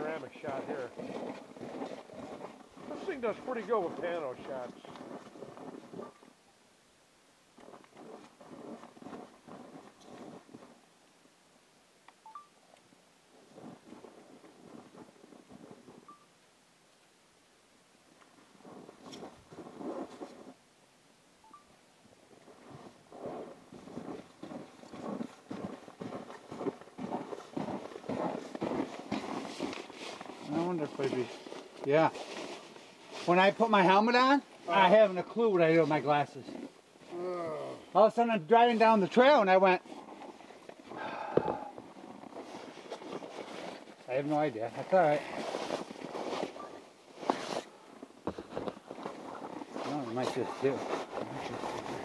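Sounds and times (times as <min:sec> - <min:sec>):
footsteps crunching in snow: 0:00.0 - 0:06.4, 0:07.6 - 0:10.8, 0:13.4 - 0:16.2, 0:18.3 - 0:20.6, 0:22.3 - 0:52.0.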